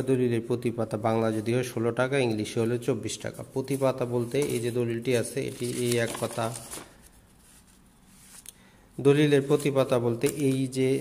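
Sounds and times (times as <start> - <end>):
paper pages rustling: 3.6 - 8.5, 9.2 - 11.0.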